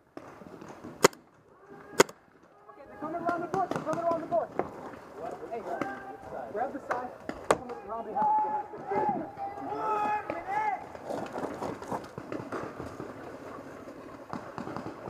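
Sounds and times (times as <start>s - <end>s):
sharp crack: 0.1s - 2.2s
voices calling out: 1.5s - 11.5s.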